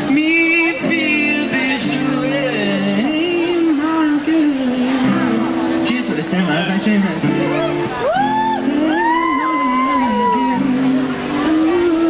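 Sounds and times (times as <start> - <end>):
strummed acoustic guitar: 0.0 - 12.0.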